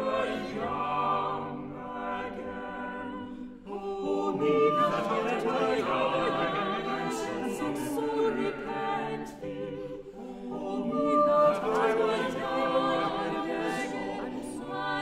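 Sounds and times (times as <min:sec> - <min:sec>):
vocal ensemble singing: 0:00.0 - 0:15.0.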